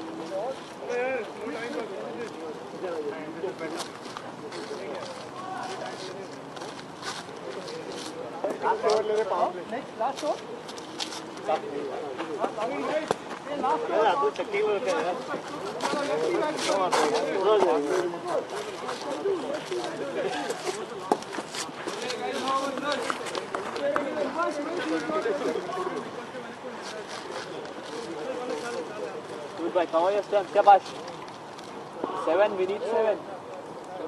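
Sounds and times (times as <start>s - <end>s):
men talking and calling: 0.0s - 34.0s.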